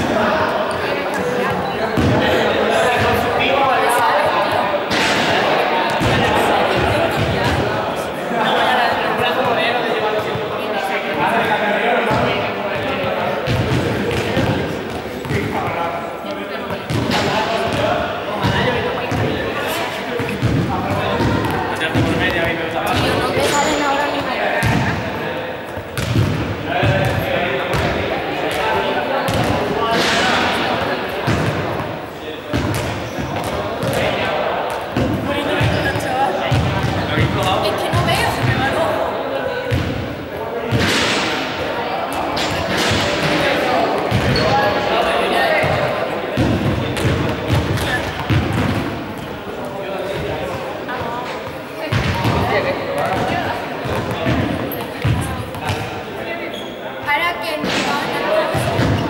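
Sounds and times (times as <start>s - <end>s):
balls bouncing on hall floor: 0.0s - 59.0s
voices: 0.0s - 59.0s.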